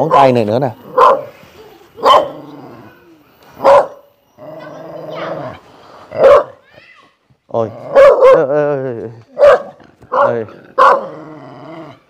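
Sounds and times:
dog barking: 0.0 - 1.4, 2.0 - 2.4, 3.6 - 4.1, 6.2 - 6.6, 7.9 - 8.6, 9.4 - 11.2.

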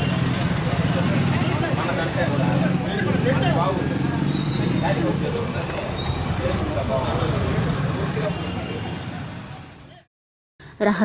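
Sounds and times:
chatter of people: 0.0 - 10.1
passing traffic: 0.0 - 10.9.

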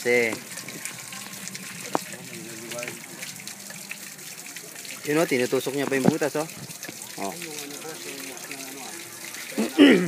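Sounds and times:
water running and splashing: 0.0 - 10.0.

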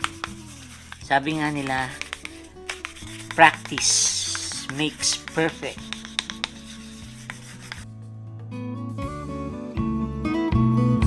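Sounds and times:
rubbing on wooden guitar body: 0.0 - 7.8
guitar music: 0.0 - 11.0.

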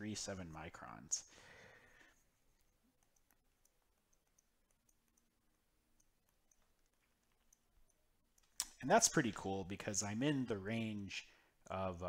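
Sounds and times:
man speaking: 0.0 - 1.3, 8.7 - 12.0
stylus tapping on tablet screen: 2.4 - 8.7.

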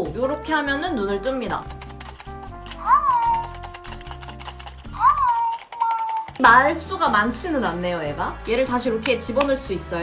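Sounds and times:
soft background music: 0.0 - 10.0
toy squeaky voice call: 2.8 - 3.5, 4.9 - 6.3.

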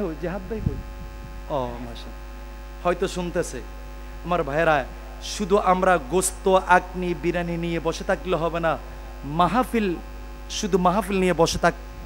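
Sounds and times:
man's voice through microphones: 0.0 - 0.8, 1.5 - 2.2, 2.8 - 11.8
low electrical hum: 0.0 - 12.0.

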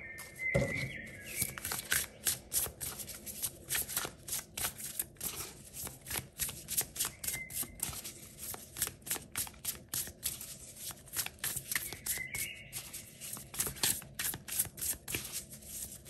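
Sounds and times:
cards being shuffled: 0.2 - 16.0.

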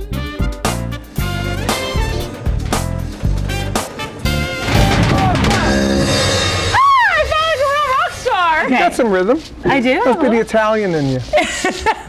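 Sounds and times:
music with drumming: 0.0 - 8.1.

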